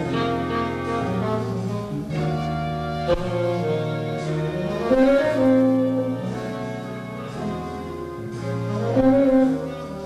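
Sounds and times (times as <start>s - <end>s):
big band horns playing jazz ballad: 0.0s - 10.0s.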